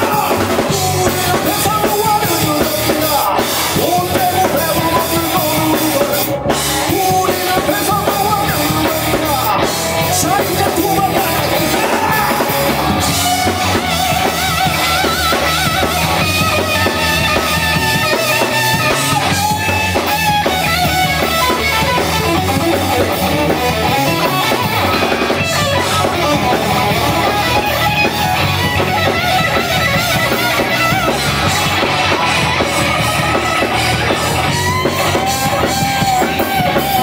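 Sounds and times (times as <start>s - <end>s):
electric guitar with bent notes: 0.0s - 37.0s
rock band playing: 0.0s - 37.0s.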